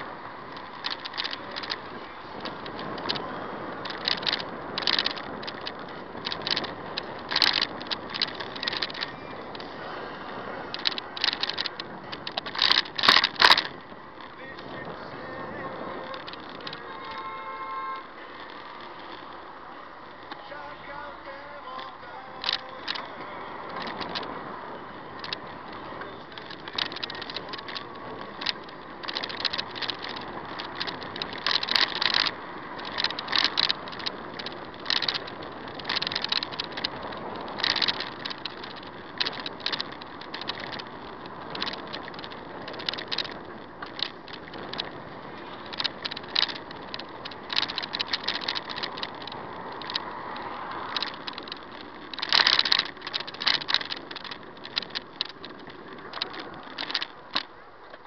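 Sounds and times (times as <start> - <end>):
rattling and clatter: 0.0 - 9.7, 10.7 - 17.6, 21.7 - 23.1, 25.2 - 58.0
vehicle road noise: 0.0 - 58.0.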